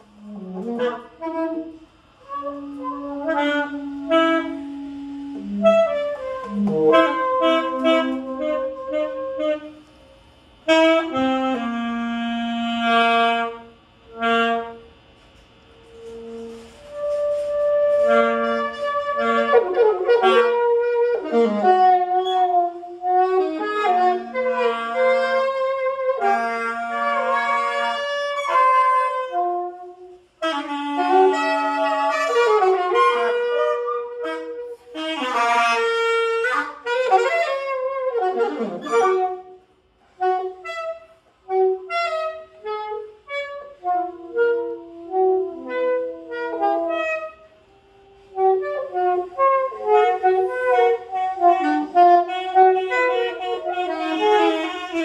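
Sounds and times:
saxophone duet: 0.0 - 55.0.

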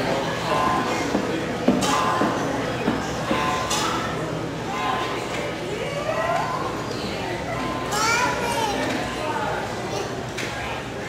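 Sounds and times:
background hubbub: 0.0 - 11.0
high child's voice: 7.9 - 9.0, 9.8 - 10.2.

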